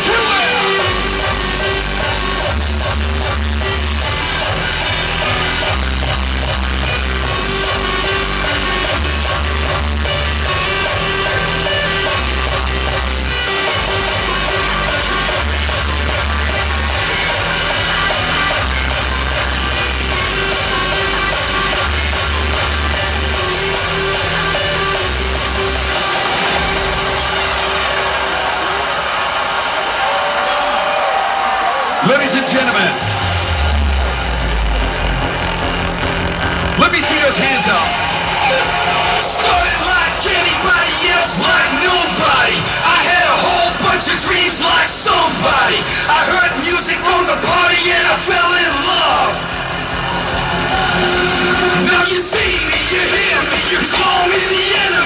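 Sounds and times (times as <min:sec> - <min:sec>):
heavy bass line: 0:00.0 - 0:30.2, 0:32.4 - 0:55.0
loud hardstyle dance music: 0:00.0 - 0:55.0.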